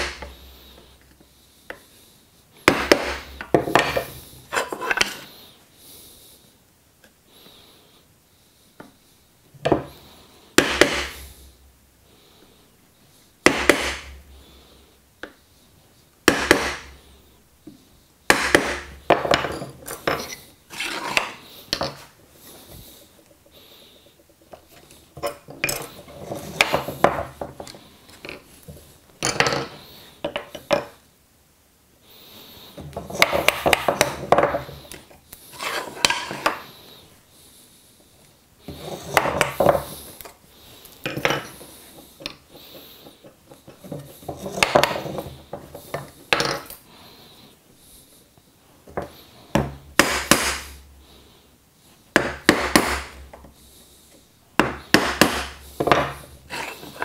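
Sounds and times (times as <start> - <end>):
mallet striking chisel: 10.6 - 11.1.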